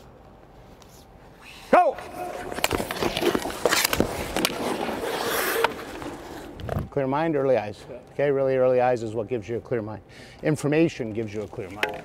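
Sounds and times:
skate blades scraping on ice: 0:02.0 - 0:06.6
stick and puck clicks: 0:02.3 - 0:06.2, 0:11.4 - 0:12.0.

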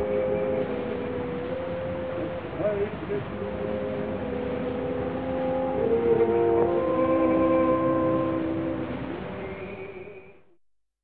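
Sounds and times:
orchestra holding sustained chords: 0:00.0 - 0:09.6
recording hiss and rumble: 0:00.0 - 0:10.6.

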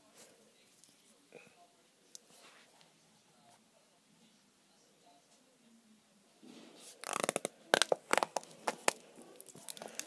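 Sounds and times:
plastic pot lid crackling: 0:07.0 - 0:10.0.

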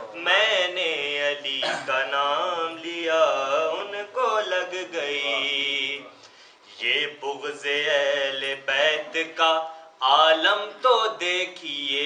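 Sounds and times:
man chanting melodically: 0:00.0 - 0:06.2.

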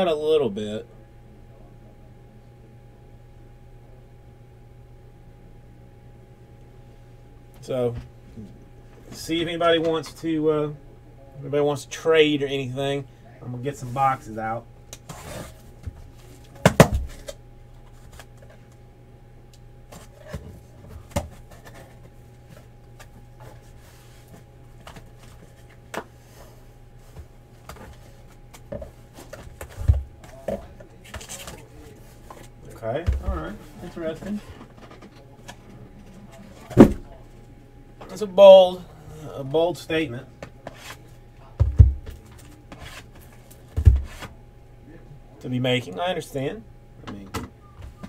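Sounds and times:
boxes knocking and rustling: 0:15.0 - 0:18.6, 0:19.9 - 0:37.2, 0:41.6 - 0:44.4
boxes thumping on a table: 0:16.6 - 0:17.4, 0:43.7 - 0:44.3.

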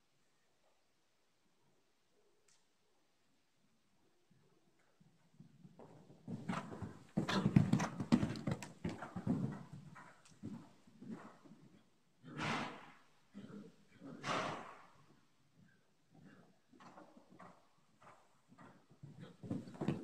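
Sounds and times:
horse hoofbeats on sand: 0:05.8 - 0:11.7, 0:16.8 - 0:20.0.

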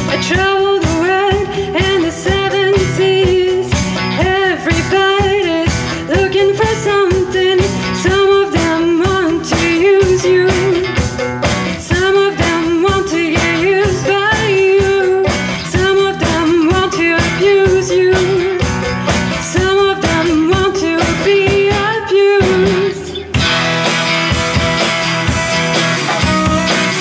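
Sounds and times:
woman singing: 0:00.0 - 0:23.4
acoustic guitar strumming: 0:00.0 - 0:27.0.

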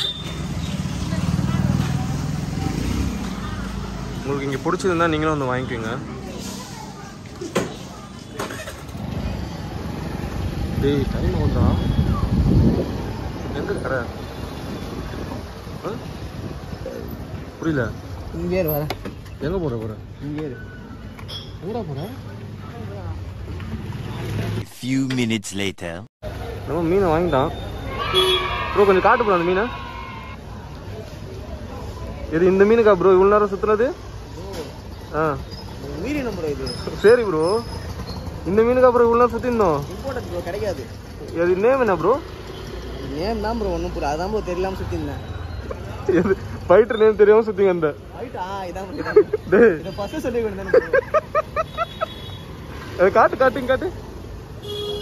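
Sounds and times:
low rumble of street traffic: 0:00.0 - 0:55.0
wind on microphone: 0:11.8 - 0:13.3.

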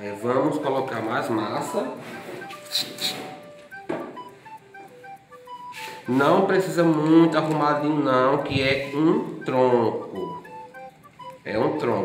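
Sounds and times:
light melody of single notes: 0:00.0 - 0:12.0.

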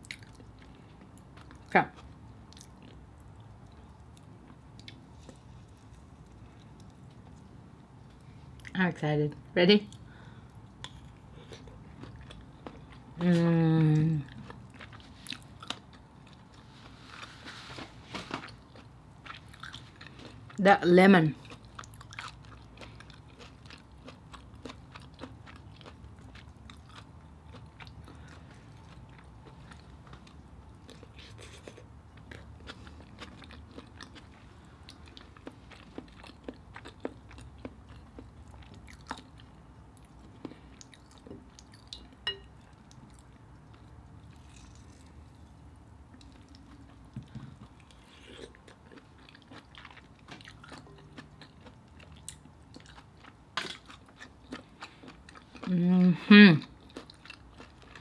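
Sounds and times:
faint chewing: 0:00.0 - 0:08.8, 0:09.9 - 0:20.6, 0:21.3 - 0:58.0
low steady hum: 0:00.0 - 0:58.0.

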